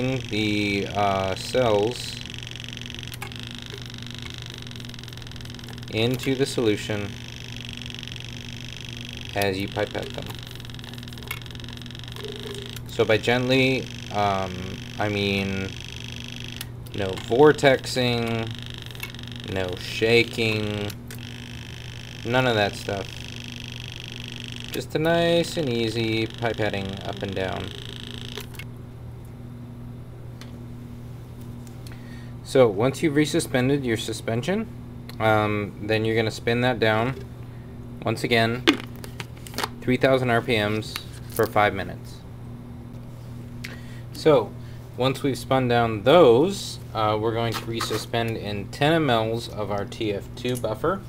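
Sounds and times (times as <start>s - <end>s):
faint high whine: 0.0s - 28.7s
steady machine hum: 0.0s - 51.0s.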